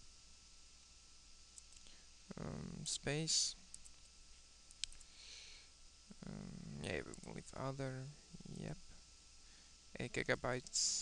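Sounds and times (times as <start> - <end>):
low room hiss: 0.0 - 11.0
computer mouse clicks: 1.6 - 1.9, 4.7 - 5.1.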